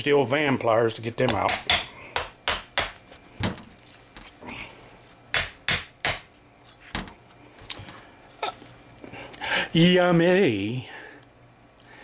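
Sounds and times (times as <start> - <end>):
sharp metal taps and knocks: 1.2 - 3.0.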